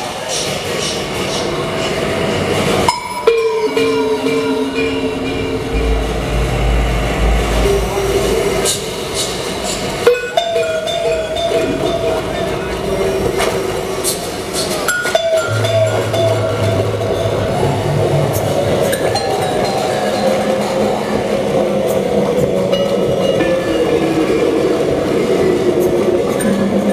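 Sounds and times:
electronic drones: 2.9 - 26.9
deep rumble: 4.2 - 10.0, 15.5 - 19.6.

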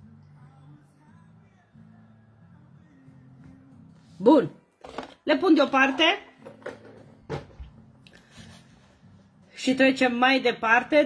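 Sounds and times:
objects knocking on a table: 5.8 - 7.8.

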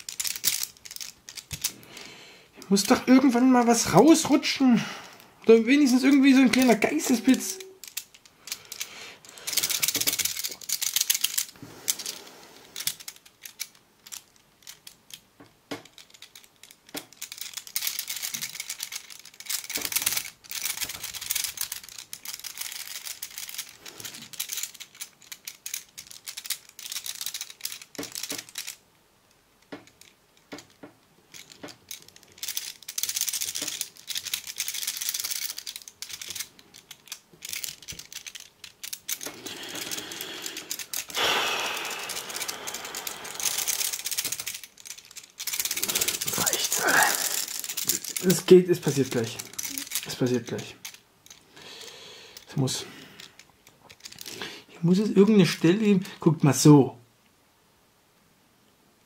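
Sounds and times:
metal puzzle pieces rattling: 0.0 - 4.7, 5.4 - 56.0.

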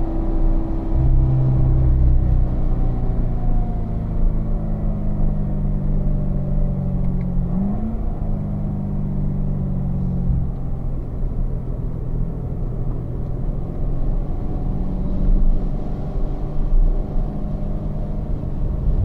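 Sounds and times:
car engine decelerating: 0.0 - 19.0.

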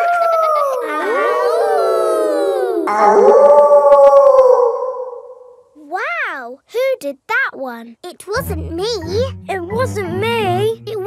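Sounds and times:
voice rising and falling in pitch: 0.0 - 5.2
cartoon children howling: 0.0 - 6.1.

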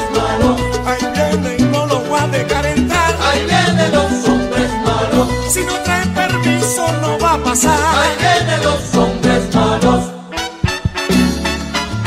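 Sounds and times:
salsa band playing: 0.0 - 12.0.

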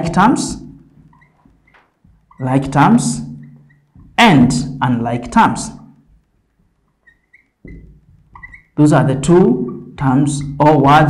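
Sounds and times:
marker squeaking on whiteboard: 0.8 - 11.0.

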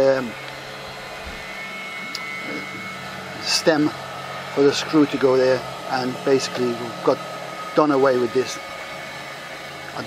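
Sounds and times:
faint high whine: 0.0 - 10.0.

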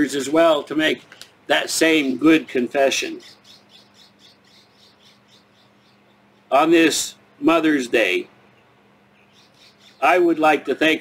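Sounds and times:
small bird chirping: 3.0 - 6.5, 8.5 - 10.2.

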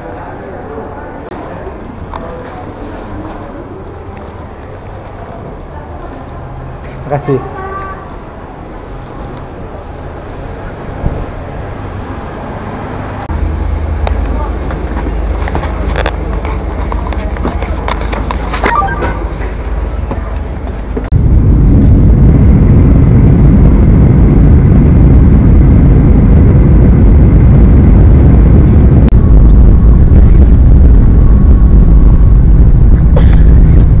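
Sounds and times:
jet engine and airflow roar: 6.6 - 34.0.

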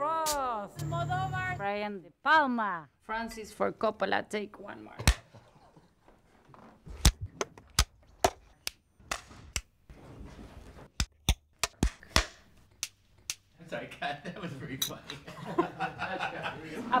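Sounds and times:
faint background noise: 11.8 - 17.0.

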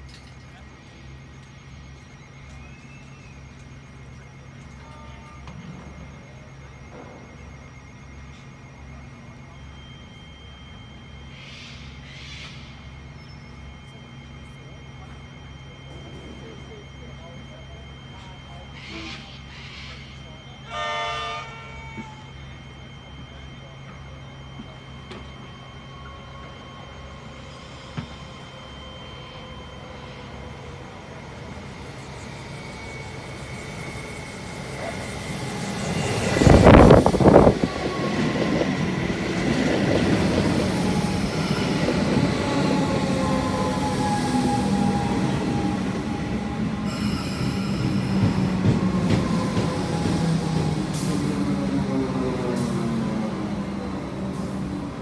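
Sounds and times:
electric train passing: 0.0 - 55.0
train whine: 0.0 - 55.0
distant train horn blast: 20.6 - 22.2.

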